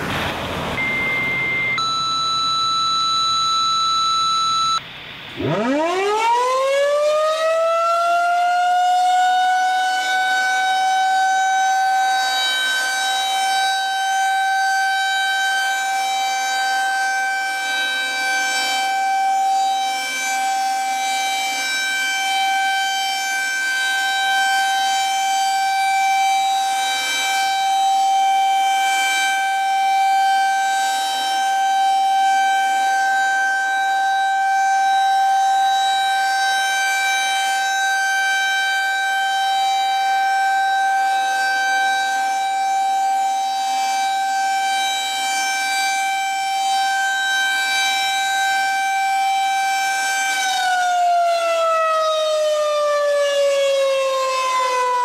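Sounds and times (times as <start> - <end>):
warning siren wailing: 0.0 - 55.0.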